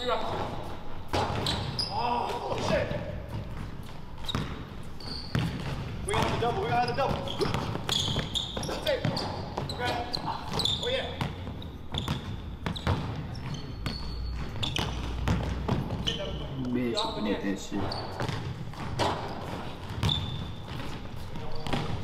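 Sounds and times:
basketball bouncing on hardwood floor: 3.3s - 4.7s, 5.3s - 16.2s, 18.1s - 22.0s.

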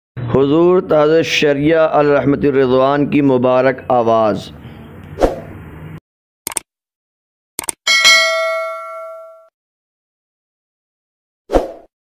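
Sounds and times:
bright chime ding: 7.9s - 9.5s.

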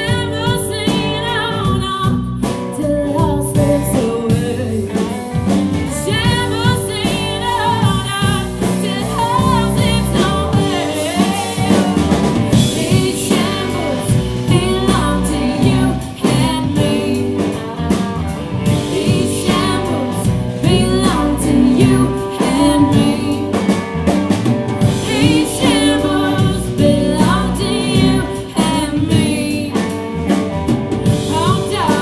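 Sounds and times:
drum kit: 0.0s - 32.0s
electric guitars: 0.0s - 32.0s
woman singing: 0.0s - 32.0s.

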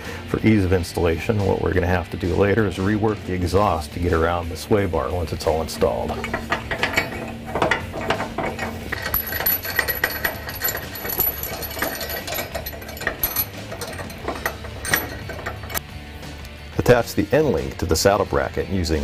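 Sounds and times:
metal hardware clinking and rattling: 4.1s - 16.6s.

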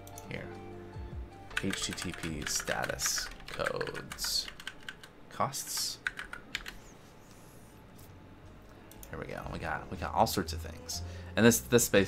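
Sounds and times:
computer keyboard typing: 1.5s - 6.8s.

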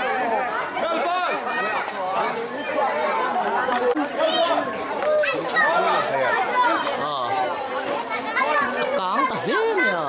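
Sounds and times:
group of people talking: 0.0s - 10.0s.

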